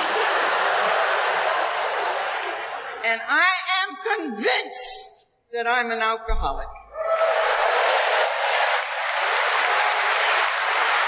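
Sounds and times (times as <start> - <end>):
audience applause: 0.0 - 3.0, 7.0 - 11.0.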